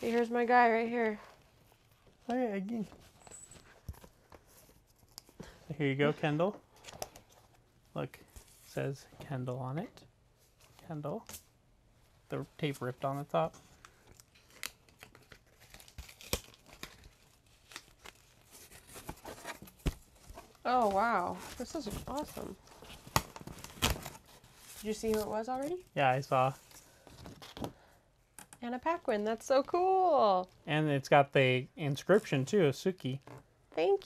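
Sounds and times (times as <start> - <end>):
packing tape and cardboard ripping: 14.0 - 26.6.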